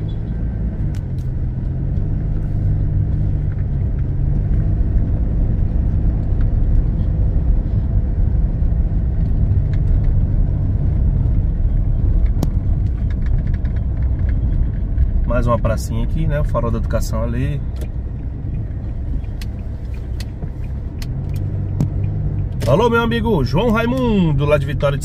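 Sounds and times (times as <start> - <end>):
car engine running: 0.0 - 25.0.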